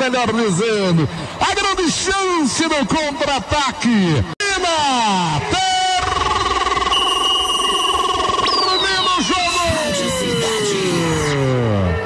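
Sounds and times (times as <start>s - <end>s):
warbling electronic tone: 5.7s - 12.0s
tones gliding down in pitch: 5.9s - 11.9s.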